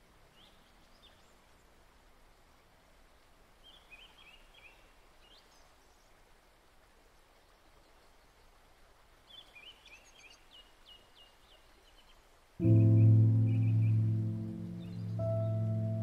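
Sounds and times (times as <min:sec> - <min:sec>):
faint birdsong chirps: 0:00.0 - 0:02.7, 0:03.4 - 0:16.0.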